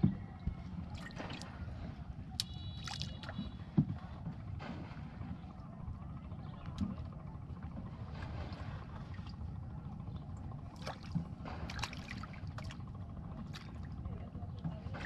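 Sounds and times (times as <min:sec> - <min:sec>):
steady low rumble: 0:00.0 - 0:15.0
water lapping against hull: 0:00.0 - 0:15.0.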